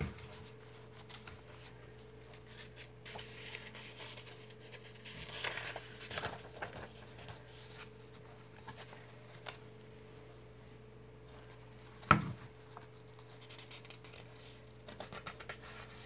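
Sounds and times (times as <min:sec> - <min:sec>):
paper pages rustling and flipping: 0:00.0 - 0:09.7, 0:11.3 - 0:16.0
faint steady hum: 0:00.0 - 0:16.0.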